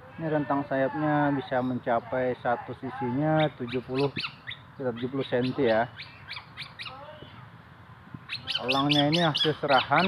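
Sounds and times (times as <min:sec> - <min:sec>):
bird chirps: 0:02.7 - 0:07.4, 0:08.2 - 0:10.0
gliding bird calls: 0:02.8 - 0:07.4, 0:08.2 - 0:10.0.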